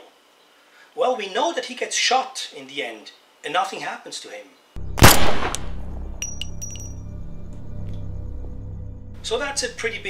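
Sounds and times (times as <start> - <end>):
low music drone: 4.8 - 10.0
cartridge case clinking: 6.2 - 7.0.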